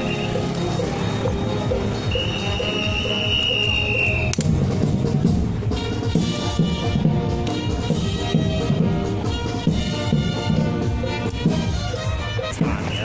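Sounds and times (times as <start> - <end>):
music with quick beat: 0.0 - 13.0.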